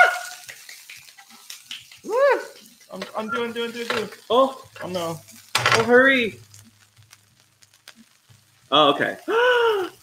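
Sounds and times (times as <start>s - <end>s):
pancake frying in pan: 0.0s - 10.0s.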